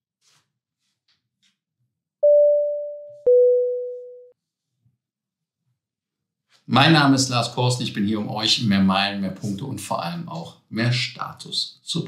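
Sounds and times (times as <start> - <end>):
two-note electronic chime: 2.2 - 4.3.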